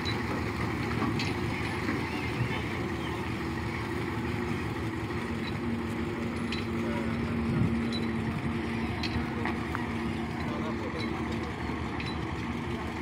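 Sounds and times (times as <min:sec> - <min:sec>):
truck diesel engine hum: 0:00.0 - 0:13.0.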